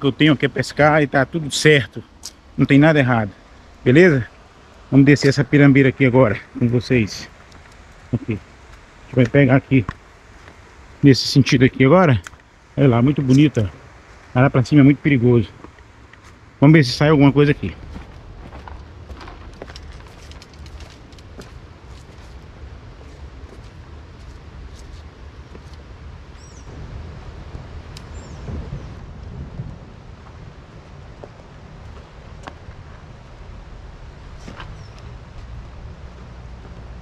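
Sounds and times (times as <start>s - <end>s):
wind rumble on microphone: 16.3s - 37.0s.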